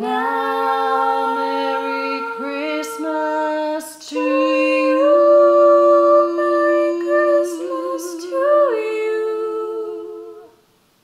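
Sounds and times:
women singing in harmony: 0.0s - 10.6s.

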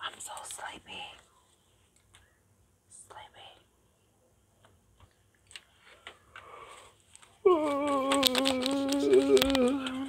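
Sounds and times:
soft whisper: 0.0s - 4.3s, 6.1s - 10.0s.

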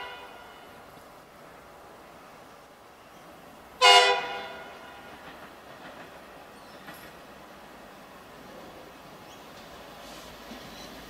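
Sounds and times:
train horn blast: 0.0s - 0.8s, 3.8s - 5.1s
faint rail noise: 0.0s - 11.0s.

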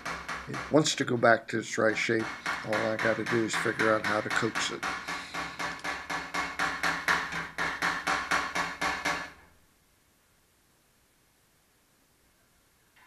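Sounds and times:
hammer tapping sheet metal: 0.0s - 9.4s.

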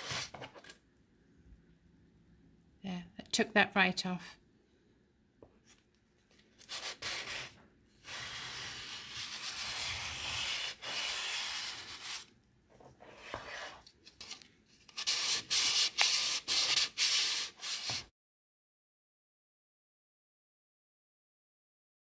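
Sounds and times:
sandpaper scratching wood: 6.7s - 12.3s, 15.0s - 18.0s.

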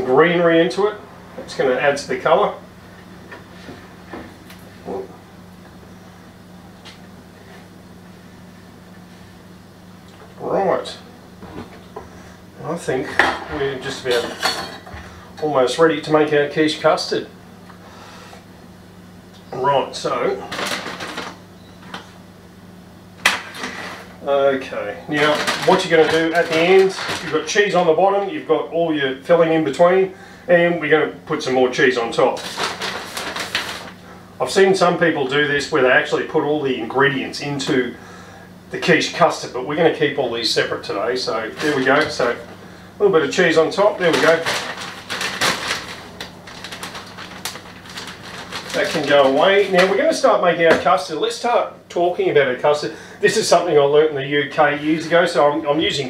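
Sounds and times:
steady low hum: 0.0s - 56.0s
packaging crinkling: 25.1s - 27.8s, 32.2s - 34.0s, 41.4s - 42.4s, 43.4s - 50.4s.

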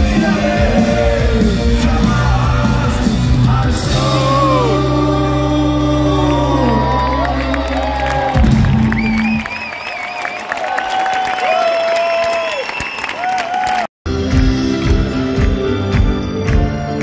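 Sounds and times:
live rock band playing: 0.0s - 9.3s, 14.1s - 17.0s
crowd cheering and shouting: 0.0s - 13.9s.

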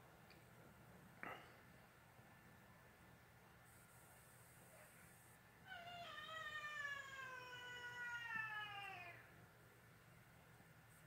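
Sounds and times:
cat yowling: 5.7s - 9.3s.

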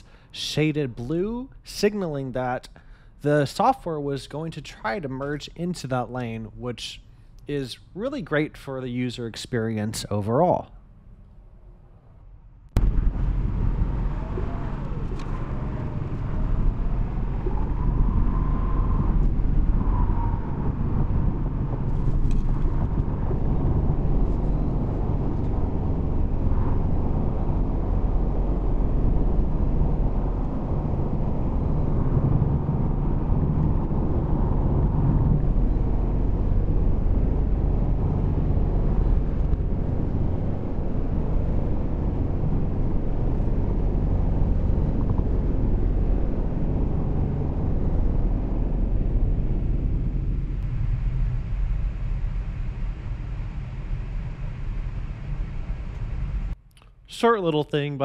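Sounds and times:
tyre and wind noise in car: 12.8s - 56.6s.

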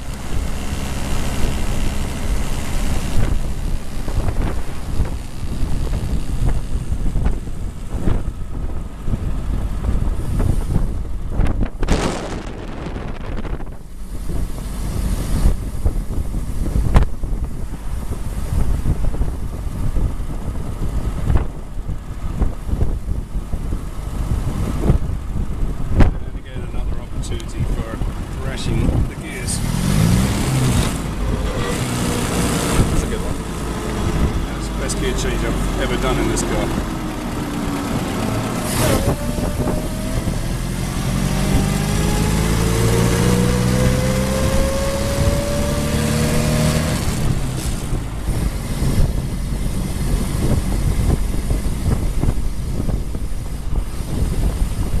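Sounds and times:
car engine driving: 0.0s - 55.0s
road and wind noise: 0.0s - 55.0s.

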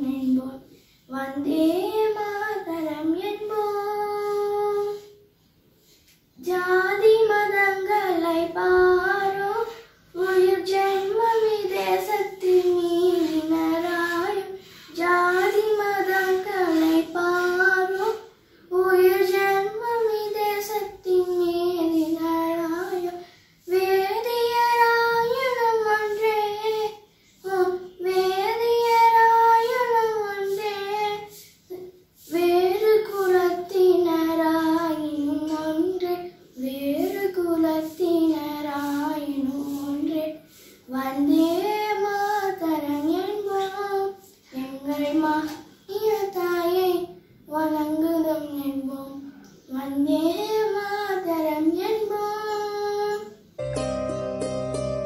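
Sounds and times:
girl singing unaccompanied: 0.0s - 53.6s.

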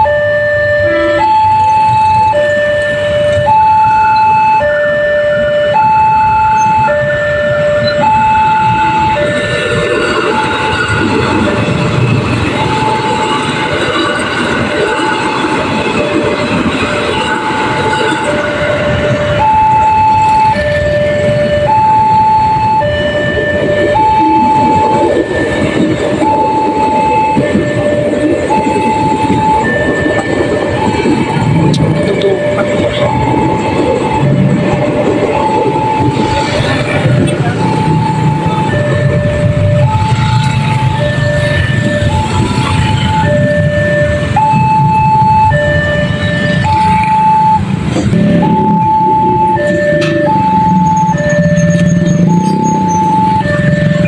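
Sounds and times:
road traffic: 0.0s - 54.0s
train rumble: 0.0s - 54.0s
two-tone crossing alarm: 0.0s - 54.0s.

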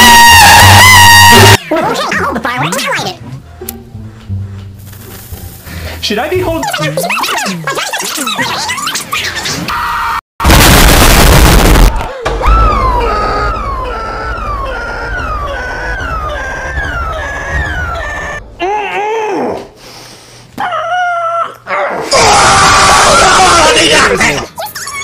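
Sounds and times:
loud burst of noise: 10.4s - 18.4s.

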